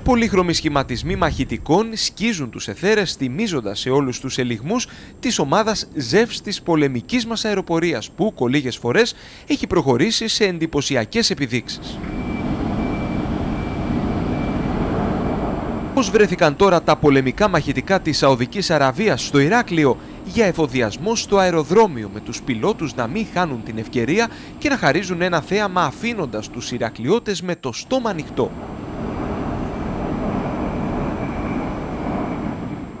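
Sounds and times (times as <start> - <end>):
jet engine noise: 0.0 - 9.4, 10.8 - 33.0
faint high whine: 0.0 - 33.0.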